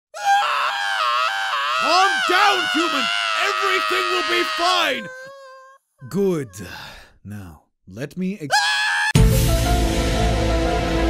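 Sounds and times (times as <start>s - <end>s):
long high-pitched scream: 0.1s - 5.8s, 8.5s - 9.2s
deep voice speaking: 1.8s - 5.1s, 6.0s - 8.6s.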